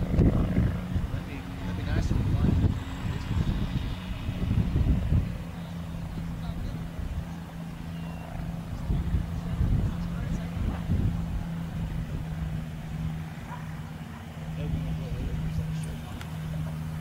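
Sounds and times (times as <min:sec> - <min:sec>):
distant aircraft engine droning: 0:00.0 - 0:17.0.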